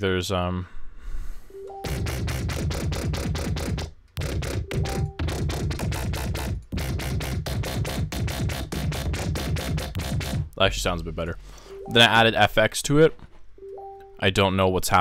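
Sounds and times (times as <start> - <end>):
deep synth bass pulsing: 4.2 - 10.6.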